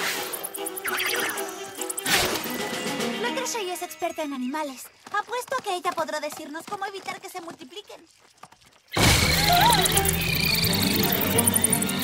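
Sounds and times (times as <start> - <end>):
music: 0.0 - 4.2, 9.2 - 12.0
whirring swarm with squeaky chirps: 0.0 - 5.0, 9.0 - 12.0.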